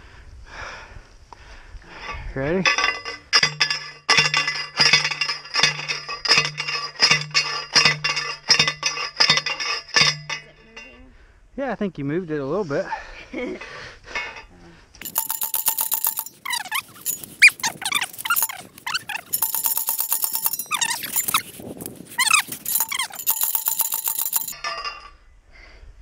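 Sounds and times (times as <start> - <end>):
post driver clanging on metal post: 2.6 - 11.0, 15.0 - 25.1.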